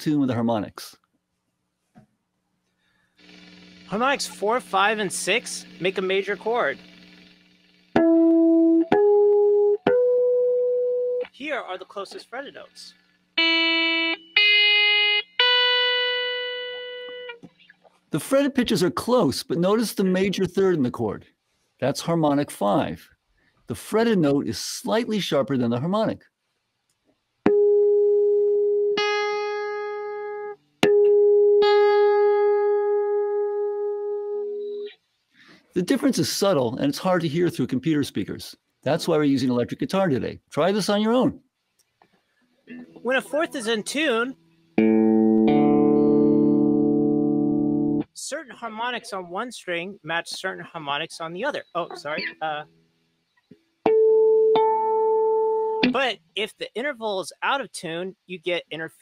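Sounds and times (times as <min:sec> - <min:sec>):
electric guitar harmonics: 0:13.4 - 0:17.4, 0:42.7 - 0:48.1, 0:53.9 - 0:56.0.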